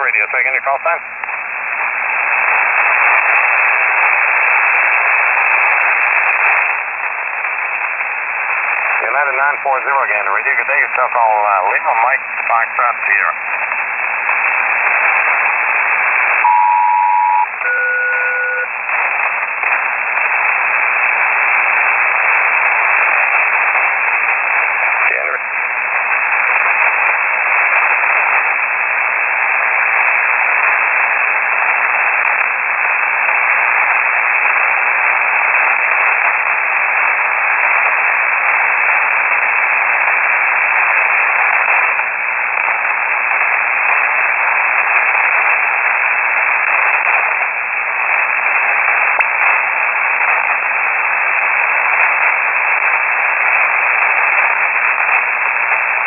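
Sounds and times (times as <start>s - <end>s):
paired radio tones: 0.0s - 56.0s
radio static hiss: 0.0s - 56.0s.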